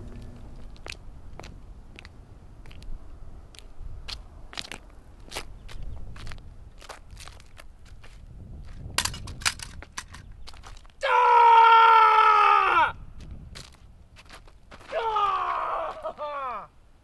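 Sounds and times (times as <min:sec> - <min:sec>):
crunching footsteps: 0:00.0 - 0:11.0, 0:13.2 - 0:16.4
man screaming: 0:11.0 - 0:13.0, 0:14.9 - 0:16.7.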